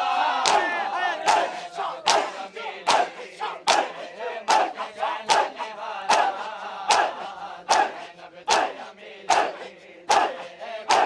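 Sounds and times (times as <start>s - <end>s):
men chanting and crying out: 0.0s - 11.0s
men slapping chests in unison: 0.0s - 11.0s.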